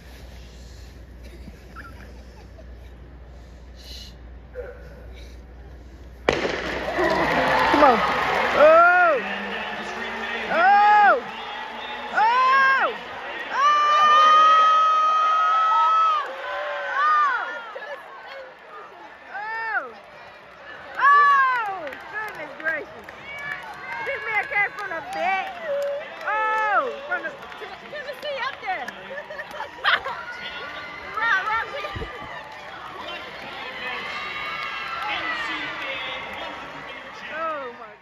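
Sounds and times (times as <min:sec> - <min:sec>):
stadium crowd roaring: 0:06.3 - 0:38.0.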